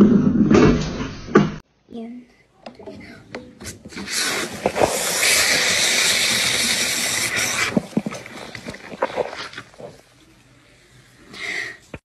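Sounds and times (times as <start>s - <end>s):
soda sputtering from bottle: 3.9s - 10.0s.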